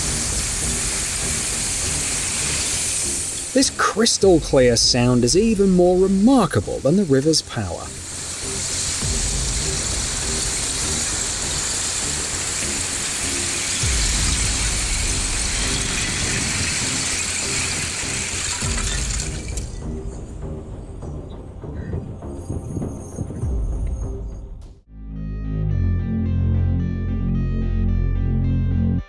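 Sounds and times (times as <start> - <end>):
ice shards tinkling hiss: 0.0 - 19.9
background music: 0.0 - 29.0.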